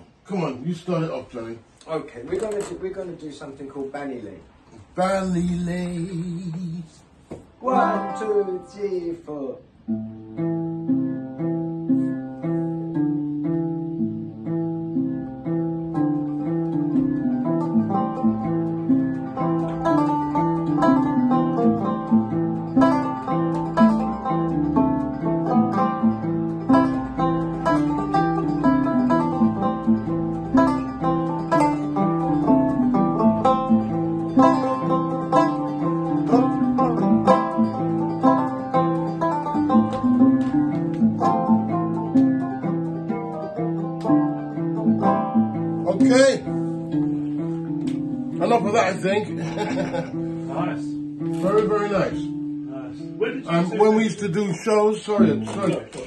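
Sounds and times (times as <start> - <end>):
banjo playing: 4.5 - 56.0
calabash harp plucked notes: 5.4 - 9.0, 9.7 - 49.1, 50.0 - 53.2, 55.2 - 56.0.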